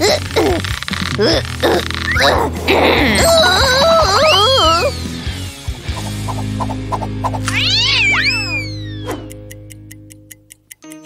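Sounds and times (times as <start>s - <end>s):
background music: 0.0s - 11.0s
cat yowling meow: 3.2s - 4.9s, 7.5s - 8.9s.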